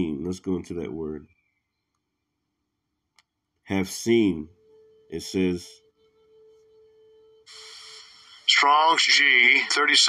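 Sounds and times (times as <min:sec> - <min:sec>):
faint thin steady tone: 0:03.8 - 0:08.5.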